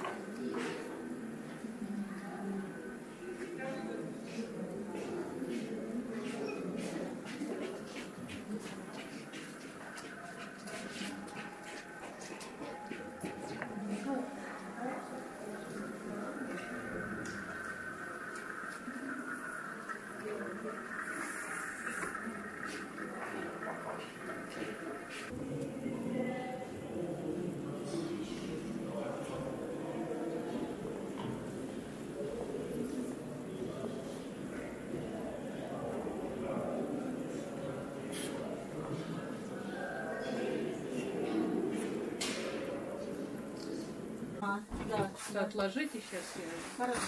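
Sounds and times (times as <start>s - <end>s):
many people talking: 0.0s - 47.0s.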